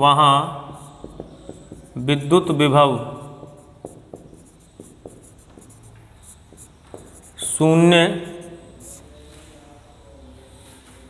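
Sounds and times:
marker tip tapping board: 0.6s - 2.6s, 3.4s - 7.5s
marker pen scratching on whiteboard: 0.6s - 9.4s.

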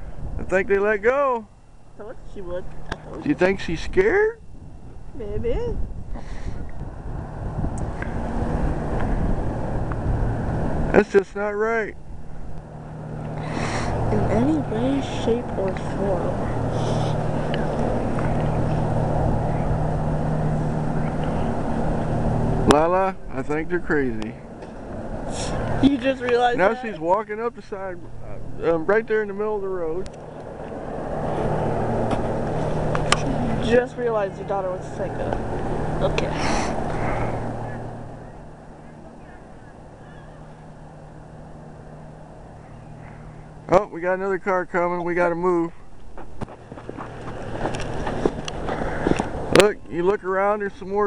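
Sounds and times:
wind rumbling on microphone: 0.0s - 0.8s, 1.8s - 11.0s, 12.0s - 26.5s, 45.8s - 50.0s
car engine running: 6.2s - 51.0s.

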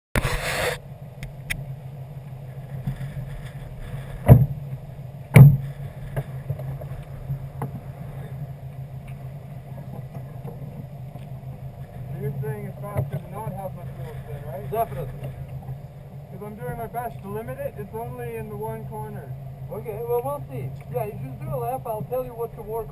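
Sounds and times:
car engine idling: 4.3s - 22.9s
sharp knocks: 5.3s - 5.7s.

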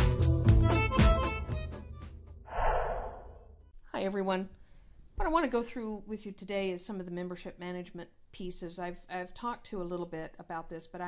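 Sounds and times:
person breathing into microphone: 2.5s - 3.5s.

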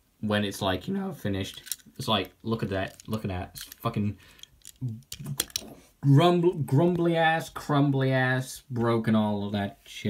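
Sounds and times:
toy pieces clicking on tabletop: 1.5s - 1.8s, 2.9s - 5.7s.

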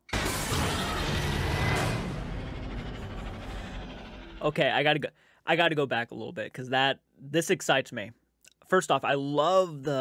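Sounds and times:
loud cinematic hit with rumble: 0.1s - 4.6s.

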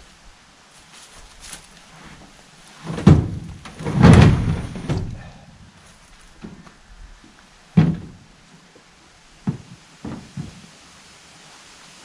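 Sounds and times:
log scraping truck bed: 1.9s - 6.7s, 7.7s - 8.4s, 9.4s - 10.8s
log knocking against truck bed: 2.9s - 5.2s, 7.7s - 8.3s, 9.4s - 10.7s.

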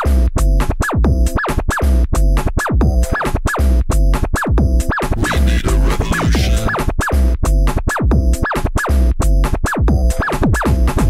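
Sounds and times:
breakbeat music from vinyl: 0.0s - 11.0s
scratchy noisy texture: 5.2s - 6.9s.

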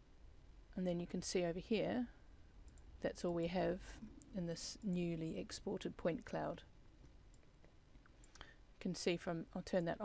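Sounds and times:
computer mouse clicks: 7.0s - 8.6s.

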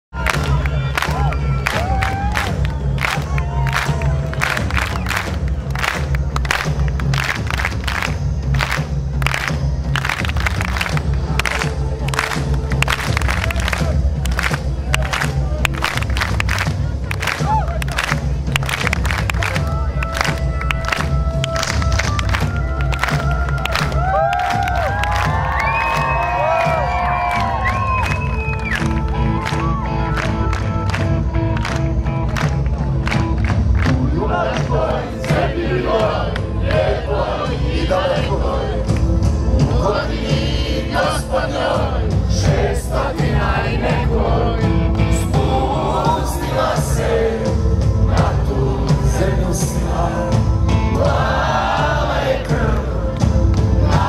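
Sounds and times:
crowd shouting and cheering: 0.0s - 54.0s
heavy bass: 0.1s - 54.0s.

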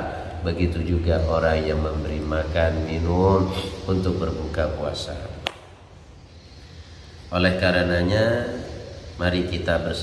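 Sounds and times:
low steady hum: 0.0s - 10.0s
sharp click: 5.4s - 5.8s.

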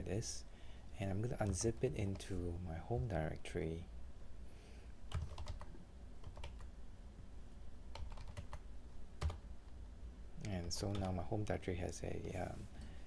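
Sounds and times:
computer keyboard typing: 5.1s - 6.7s, 7.9s - 8.6s, 9.2s - 9.4s, 10.4s - 11.2s.

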